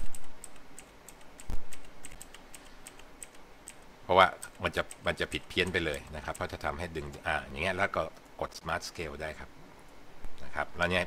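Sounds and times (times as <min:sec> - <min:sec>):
computer keyboard clicks: 0:00.0 - 0:03.8.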